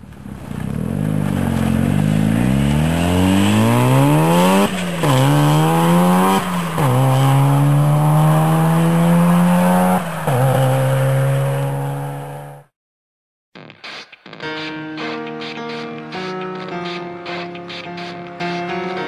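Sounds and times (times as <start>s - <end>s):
rotary engine accelerating: 0.3s - 12.6s.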